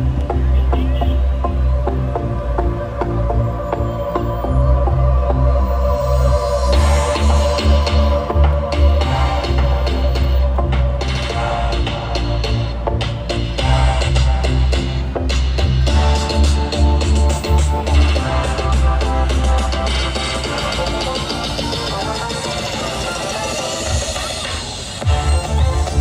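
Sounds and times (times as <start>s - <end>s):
music with heavy bass and drums: 0.0s - 26.0s.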